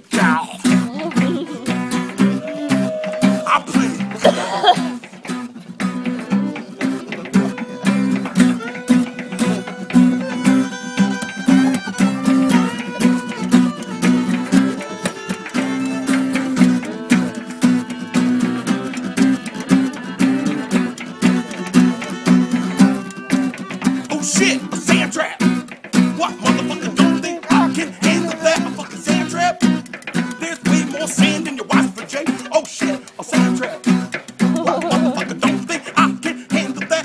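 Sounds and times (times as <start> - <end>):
acoustic guitar strumming: 0.0 - 37.0
fiddle playing melody: 0.6 - 37.0.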